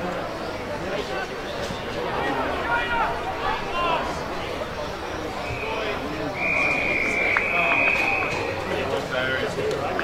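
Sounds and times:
faint crowd chatter: 0.0 - 10.0
whistle blast: 5.5 - 8.7.

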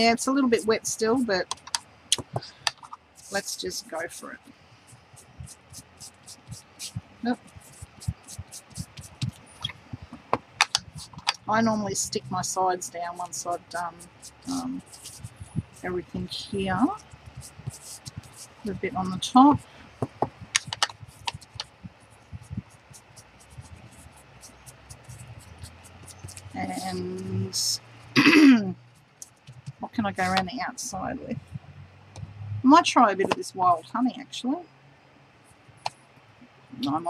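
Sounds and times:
tool dabbing on paper: 0.0 - 28.1, 28.9 - 31.6
scratchy swipes on paper: 1.0 - 28.2, 29.2 - 30.5.

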